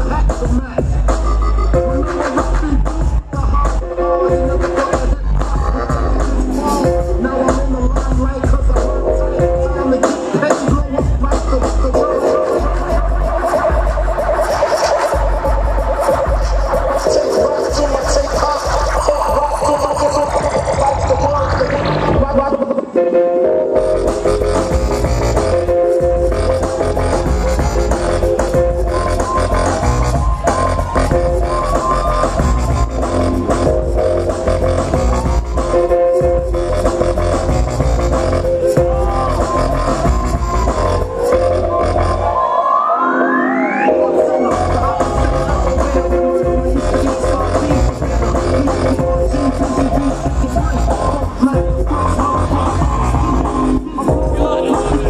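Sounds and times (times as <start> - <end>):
electronic dance music: 0.0 - 55.0.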